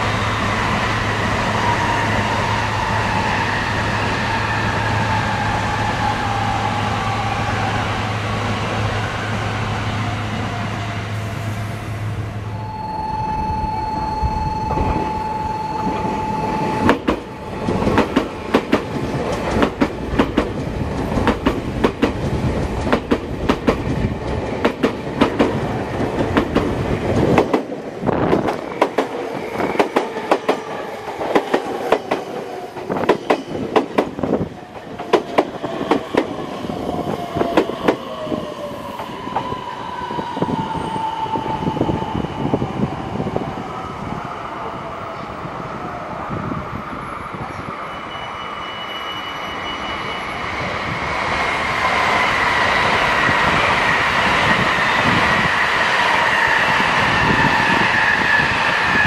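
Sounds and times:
train whine: 0:00.0 - 0:59.0.

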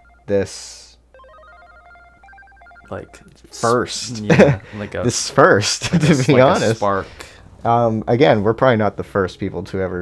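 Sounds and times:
quiet background melody: 0:00.0 - 0:06.9.

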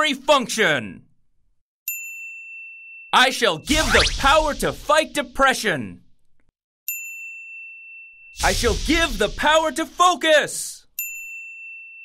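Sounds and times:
bell-like chime ding: 0:06.9 - 0:08.4.

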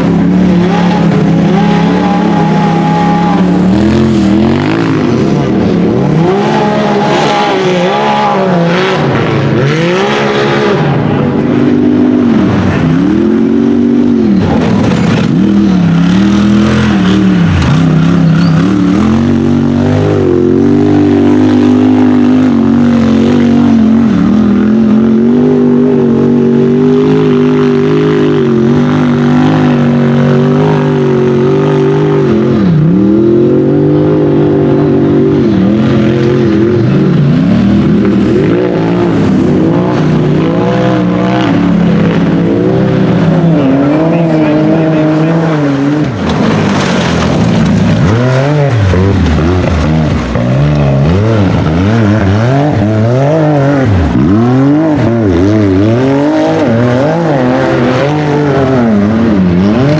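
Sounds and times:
engine revving hard: 0:00.0 - 0:59.9.

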